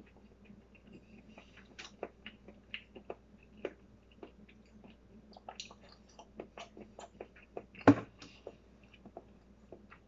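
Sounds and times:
chewing smacks: 0.0s - 10.0s.

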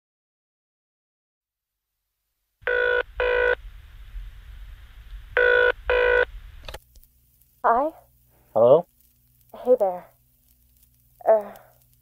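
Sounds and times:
telephone ringing over phone line: 2.6s - 3.6s, 5.4s - 6.3s
low hum: 2.6s - 12.0s.

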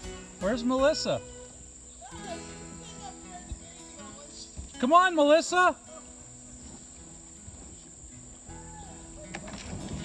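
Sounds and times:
high-pitched insect chorus: 0.0s - 10.0s.

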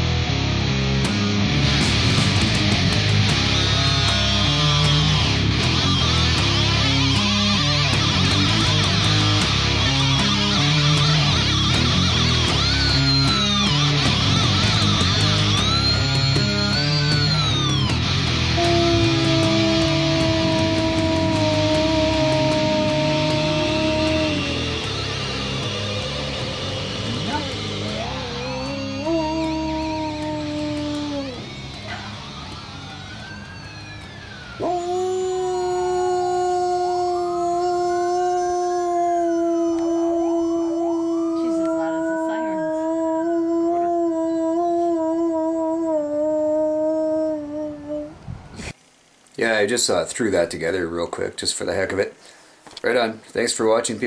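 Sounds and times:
rock music: 0.0s - 36.6s
dog howling: 5.9s - 48.2s.

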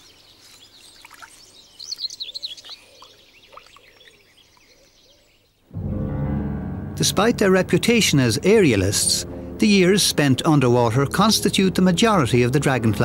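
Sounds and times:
birds chirping calls: 0.0s - 5.7s
music: 5.7s - 13.0s.

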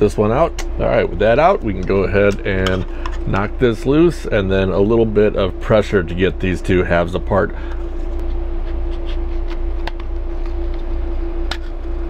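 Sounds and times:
constant mid-pitched tone: 0.0s - 12.0s
low machine hum: 0.0s - 12.0s.

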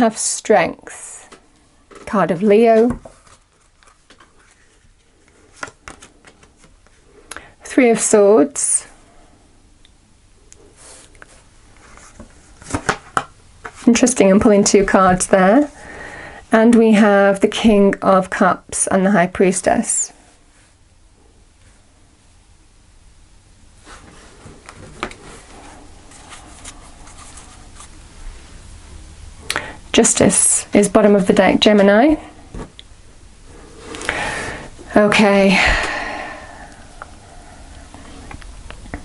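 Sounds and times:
cards being shuffled by hand: 1.2s - 7.0s, 10.9s - 14.0s, 23.8s - 28.0s
faint card rustles: 1.2s - 7.0s, 23.8s - 28.0s.

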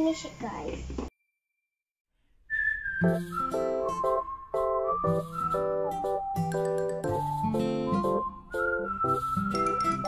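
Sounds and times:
whistled melody: 2.5s - 10.0s
light musical accompaniment: 3.0s - 10.0s.

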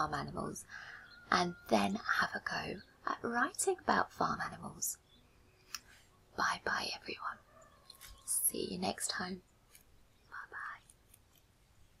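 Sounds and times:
woman whispering: 6.3s - 7.4s, 10.2s - 11.0s.

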